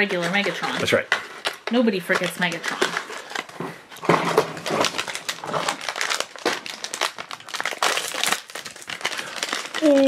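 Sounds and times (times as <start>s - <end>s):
foil wrapper bag crinkling: 0.0s - 10.0s.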